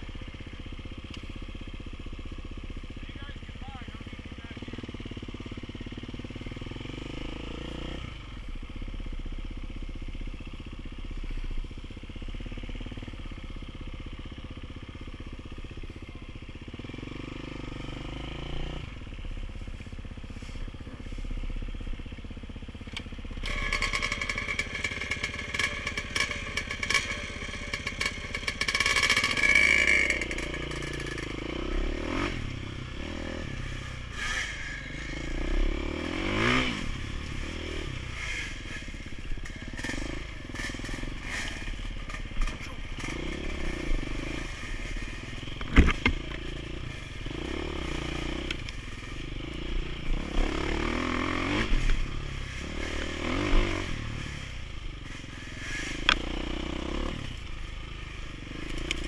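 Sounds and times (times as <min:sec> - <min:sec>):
dirt bike engines idling and revving: 0:00.0 - 0:59.0.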